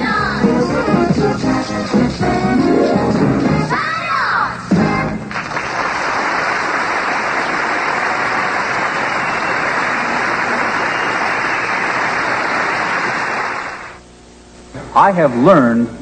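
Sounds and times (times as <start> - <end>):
audience applauding: 5.3 - 14.0.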